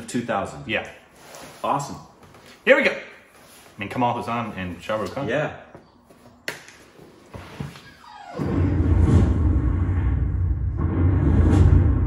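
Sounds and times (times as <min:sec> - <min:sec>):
deep steady rumble: 0:08.5 - 0:12.0.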